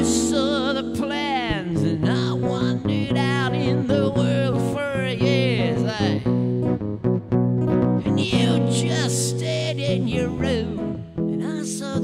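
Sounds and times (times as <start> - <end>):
man singing: 0.0 - 6.5, 8.0 - 12.0
strummed acoustic guitar: 0.0 - 12.0.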